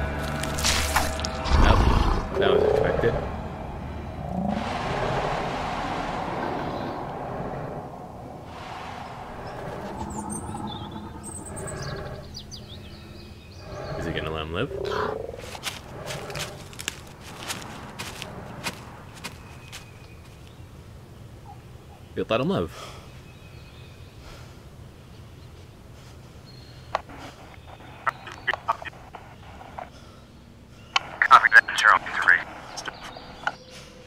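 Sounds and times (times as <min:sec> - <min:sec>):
birds chirping: 0:00.0 - 0:34.0.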